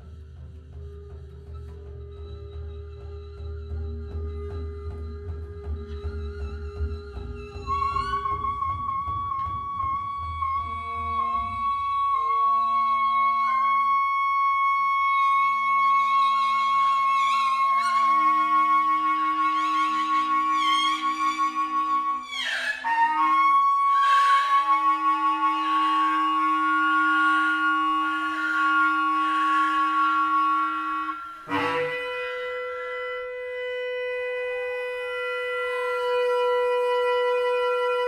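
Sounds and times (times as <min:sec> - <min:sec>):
bamboo flute: 0:00.0 - 0:38.0
wind instruments holding notes: 0:02.8 - 0:38.0.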